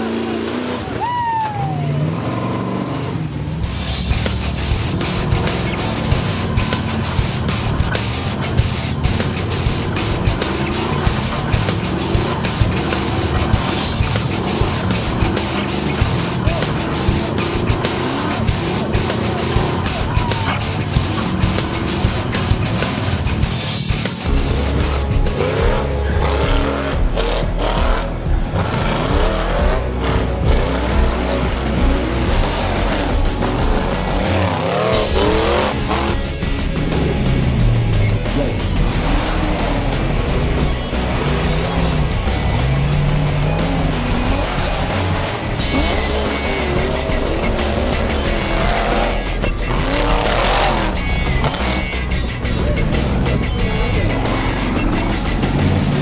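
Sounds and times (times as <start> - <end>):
background music with steady beat: 0.0 - 56.0
buggy engines revving: 0.0 - 56.0.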